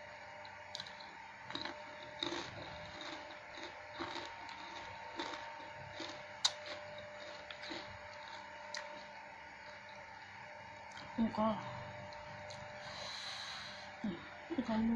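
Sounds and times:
faint steady hum: 0.0 - 14.9
moist crunching chewing: 0.8 - 10.0.

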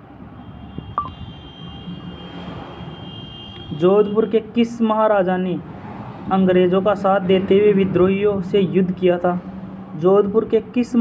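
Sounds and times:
man speaking: 3.8 - 5.6, 6.3 - 9.4, 10.0 - 11.0.

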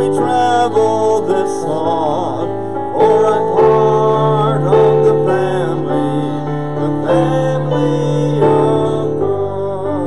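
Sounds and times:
gospel chorus singing: 0.0 - 10.0.

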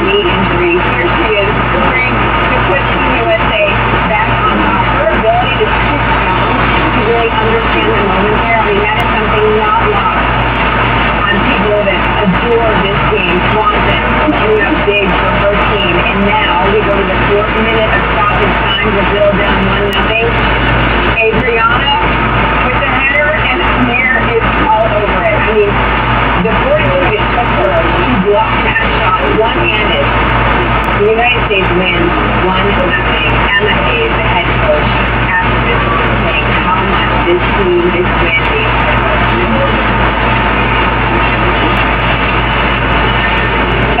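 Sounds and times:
muffled television voices: 0.0 - 44.0
steady low hum: 0.0 - 44.0.

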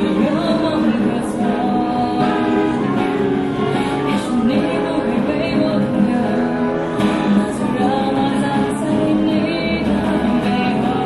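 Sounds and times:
strummed acoustic guitar: 0.0 - 11.0
woman singing into a microphone: 0.0 - 11.0.

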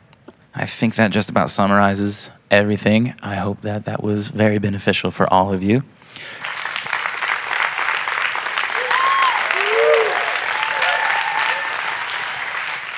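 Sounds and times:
audience applauding: 6.3 - 12.9
whoops and cheers: 8.7 - 12.2.

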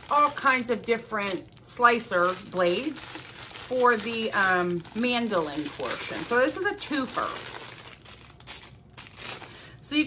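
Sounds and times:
plastic crinkling: 0.0 - 9.8.

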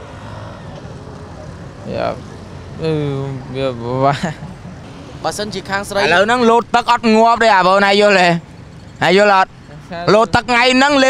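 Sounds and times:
city street traffic: 0.0 - 11.0
man speaking: 5.2 - 8.4, 9.0 - 11.0.

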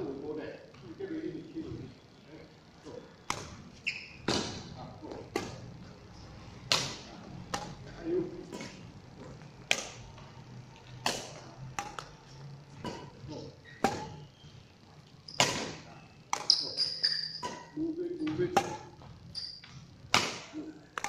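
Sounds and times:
racket hitting shuttlecock: 5.3 - 5.7, 6.7 - 7.8, 9.7 - 10.0, 11.0 - 12.1, 13.8 - 14.2, 15.3 - 16.8, 18.5 - 18.9, 20.1 - 21.0.

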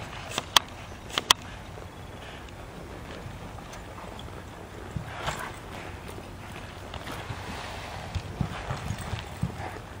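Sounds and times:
hooves thudding on dirt: 0.0 - 10.0.

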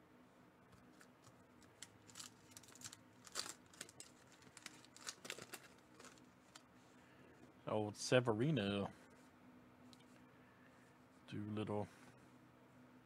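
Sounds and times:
cards clicking and rustling: 0.8 - 6.7.

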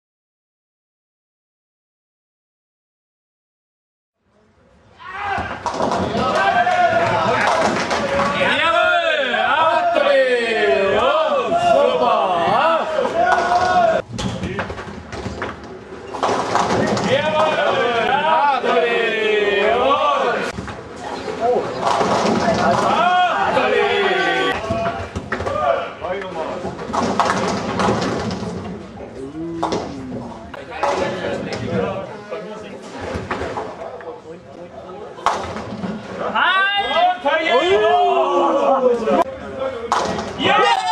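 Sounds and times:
bowling ball striking pins: 5.5 - 8.5, 13.2 - 18.0, 21.6 - 23.1, 26.6 - 28.9
knocks and clatter: 26.6 - 28.9.

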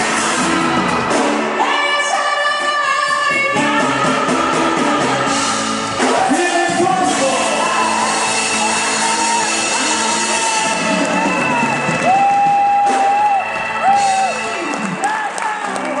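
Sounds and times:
dance band playing: 0.0 - 16.0
woman singing: 1.6 - 5.5.

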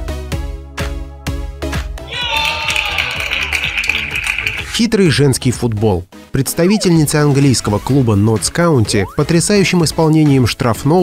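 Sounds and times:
background music with steady bass: 0.0 - 11.0
spectators cheering and clapping: 2.0 - 4.8.

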